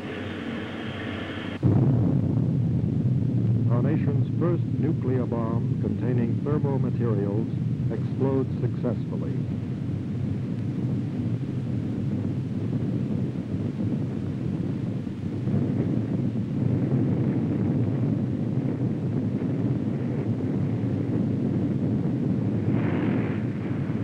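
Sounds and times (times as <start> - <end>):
deep explosion rumble: 0.0 - 24.0.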